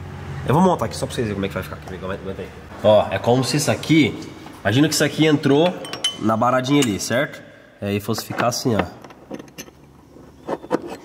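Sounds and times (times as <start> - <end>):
metallic clicks and scrapes: 9.0 - 11.0.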